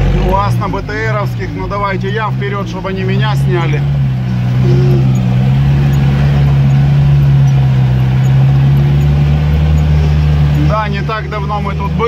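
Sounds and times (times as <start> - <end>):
vehicle engine running under load: 0.0 - 12.0.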